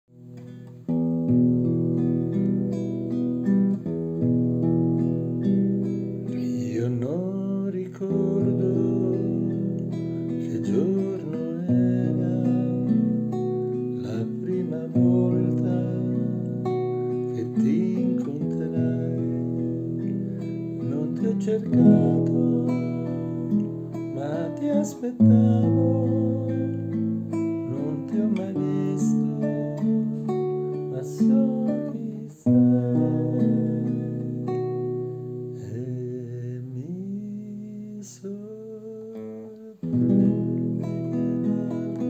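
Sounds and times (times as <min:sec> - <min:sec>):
classical guitar chords: 0:00.1 - 0:42.0.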